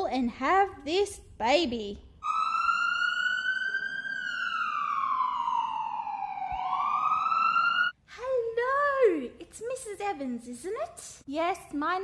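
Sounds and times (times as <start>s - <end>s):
wailing siren: 2.2s - 8.0s.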